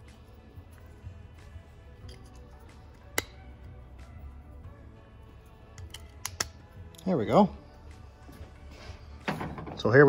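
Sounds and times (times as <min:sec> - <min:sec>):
faint background music: 0:00.0 - 0:10.0
plastic cap clicking: 0:05.8 - 0:06.6.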